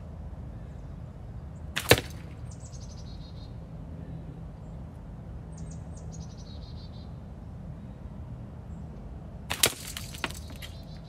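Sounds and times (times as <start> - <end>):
slingshot shot cracking on target: 1.8 - 2.5, 9.5 - 10.9
smaller cracks and clatter: 9.5 - 11.0.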